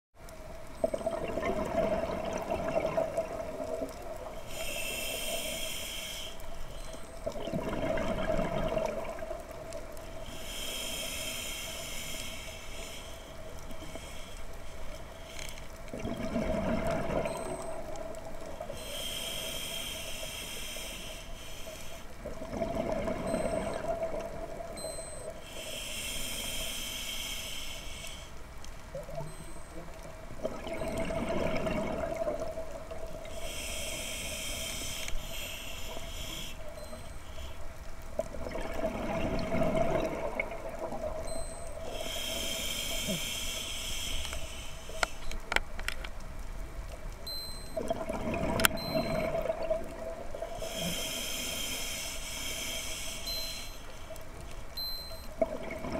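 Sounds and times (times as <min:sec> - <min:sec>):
faint hum: 0:00.2 - 0:55.9
bubbling exhaled air: 0:00.8 - 0:05.4, 0:07.2 - 0:09.6, 0:15.9 - 0:18.0, 0:22.3 - 0:24.7, 0:30.4 - 0:34.9, 0:38.3 - 0:43.6, 0:47.8 - 0:53.5, 0:55.4 - 0:55.9
hissing inhale through regulator: 0:04.3 - 0:07.1, 0:10.1 - 0:15.7, 0:18.4 - 0:22.3, 0:25.2 - 0:28.4, 0:33.1 - 0:37.7, 0:41.7 - 0:45.4, 0:50.4 - 0:54.3.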